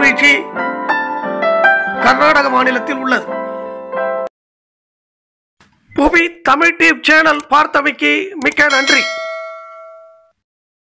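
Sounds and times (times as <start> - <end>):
notification bell ding: 8.7 - 10.4.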